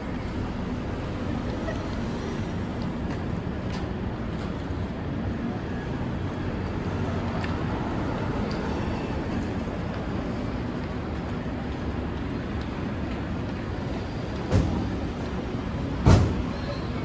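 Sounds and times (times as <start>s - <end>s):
street traffic rumble: 0.0s - 17.0s.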